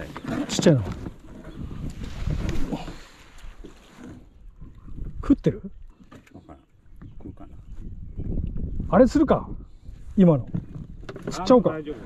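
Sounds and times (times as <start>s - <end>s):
wind on microphone: 0.0s - 5.9s, 6.8s - 12.0s
water lapping against boat hull: 0.0s - 8.8s.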